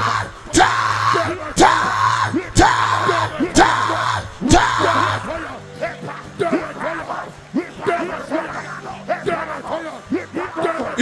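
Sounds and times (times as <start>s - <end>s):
background music with low notes: 0.0s - 11.0s
man shouting into a microphone: 0.0s - 11.0s.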